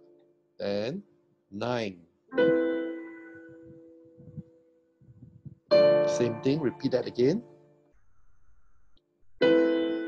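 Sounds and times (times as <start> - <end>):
digital piano chord: 2.3 - 4.4, 5.7 - 7.5.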